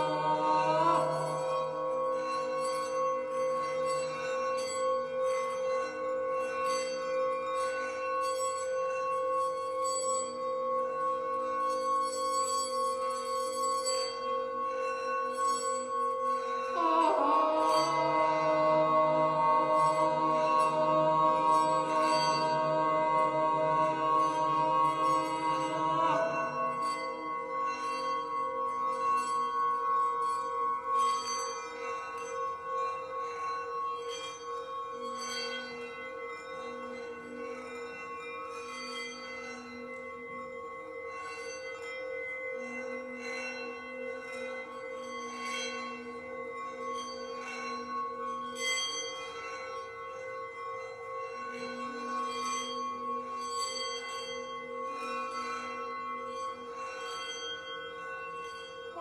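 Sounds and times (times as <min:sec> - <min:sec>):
singing bowl ringing: 0:00.0 - 0:59.0.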